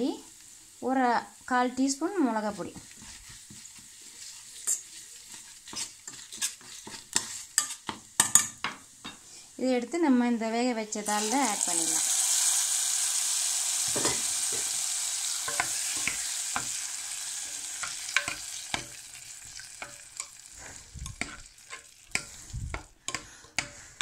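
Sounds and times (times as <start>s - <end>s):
hot oil sizzling: 0.0s - 24.0s.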